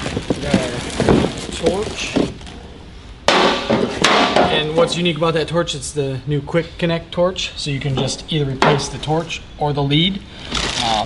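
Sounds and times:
packaging rustling: 0.0 - 2.7, 10.4 - 11.0.

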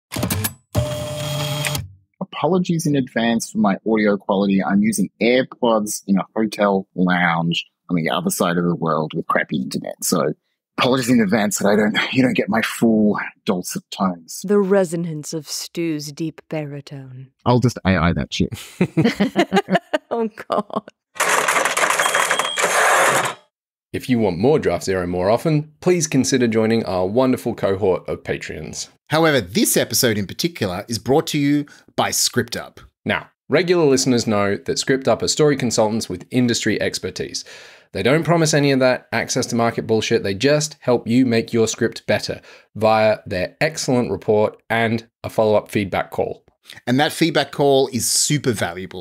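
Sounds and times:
man speaking: 2.2 - 14.4, 17.4 - 19.8, 24.0 - 49.0.

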